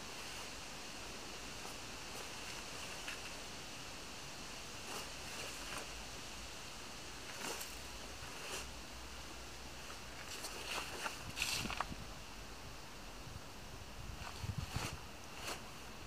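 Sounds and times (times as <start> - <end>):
rustling on leaf litter: 0.0 - 12.1, 14.0 - 16.0
background hiss: 0.0 - 16.0.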